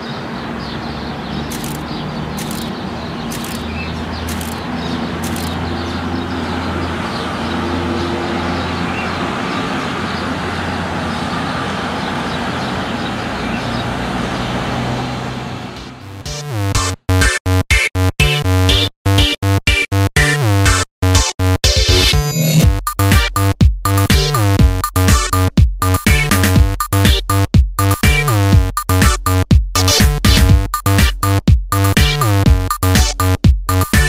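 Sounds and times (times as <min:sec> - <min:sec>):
passing vehicles: 0:00.0 - 0:16.3
short high ticks: 0:02.4 - 0:02.7.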